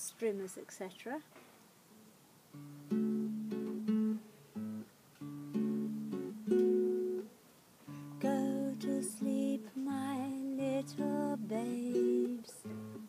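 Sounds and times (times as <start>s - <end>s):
acoustic guitar chords: 2.5s - 13.0s.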